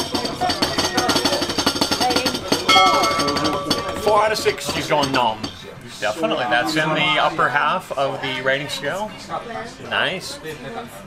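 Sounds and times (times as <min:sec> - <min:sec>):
drumroll: 0:00.0 - 0:05.6
ringing bell-like chime: 0:02.7 - 0:05.2.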